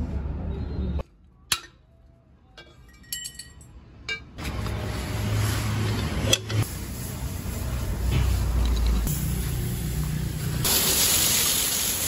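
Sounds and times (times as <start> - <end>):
pressure washer jet hissing: 6.5 - 12.0.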